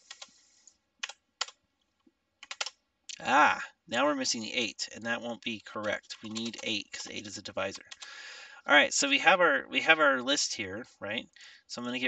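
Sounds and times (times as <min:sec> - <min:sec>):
keystrokes on computer keyboard: 0:00.0 - 0:00.3, 0:01.0 - 0:01.6, 0:02.4 - 0:02.8, 0:05.6 - 0:06.7.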